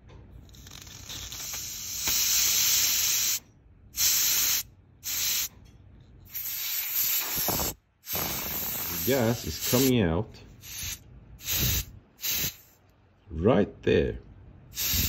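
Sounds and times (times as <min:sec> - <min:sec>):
butane gas hissing from valve: 0:00.4 - 0:03.4, 0:04.0 - 0:05.5, 0:06.3 - 0:10.0, 0:10.6 - 0:12.8, 0:14.7 - 0:15.0.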